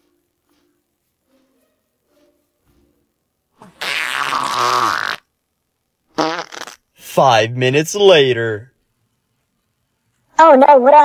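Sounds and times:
long low fart: 0:03.6 - 0:05.3, 0:06.1 - 0:06.8.

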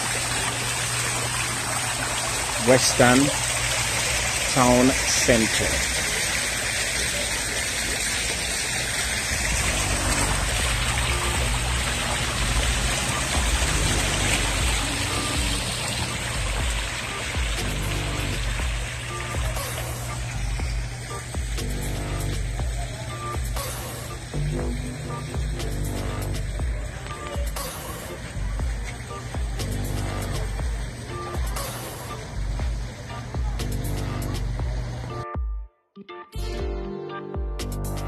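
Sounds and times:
fountain water splashing: 0:00.0 - 0:35.1
music: 0:02.6 - 0:03.4, 0:09.4 - 0:38.0.

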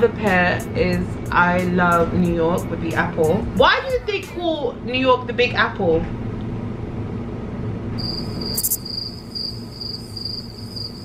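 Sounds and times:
low room hum: 0:00.0 - 0:11.0
crickets chirping trill: 0:08.0 - 0:11.0.

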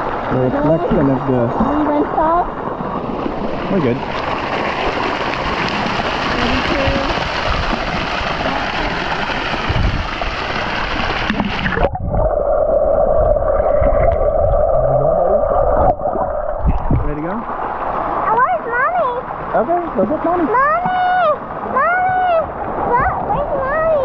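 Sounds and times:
muffled underwater hum: 0:00.0 - 0:04.2
water sloshing and splashing: 0:00.0 - 0:15.0, 0:15.6 - 0:24.0.

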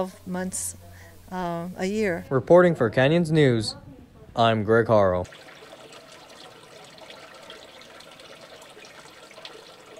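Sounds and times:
water drips and splashes: 0:05.2 - 0:09.9
water trickling in a tank: 0:05.2 - 0:09.9.

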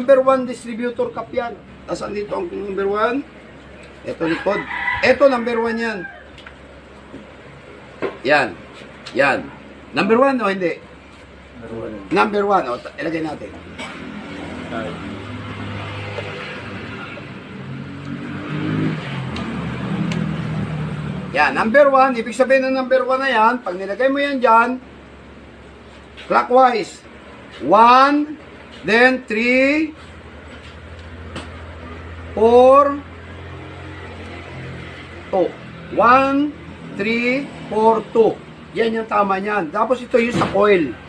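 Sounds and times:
vehicle engine humming: 0:00.0 - 0:41.0.

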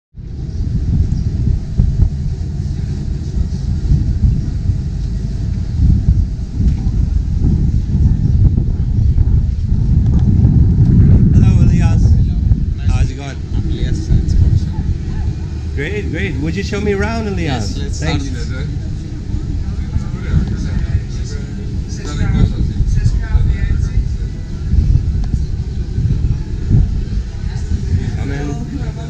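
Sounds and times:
wind buffeting microphone: 0:00.1 - 0:29.0.

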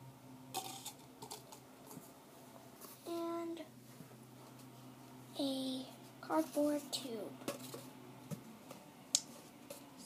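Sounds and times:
plastic cups clicking: 0:00.6 - 0:01.6.

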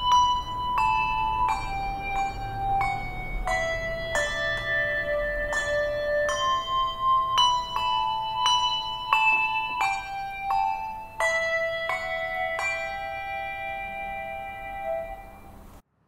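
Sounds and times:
handbells ringing a slow melody: 0:00.0 - 0:15.8.

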